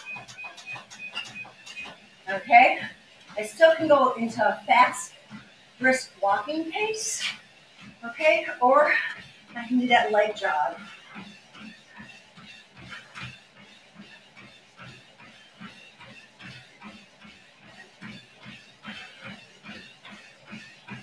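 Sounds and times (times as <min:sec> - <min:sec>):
footfalls jogging on treadmill: 0:00.0 - 0:21.0.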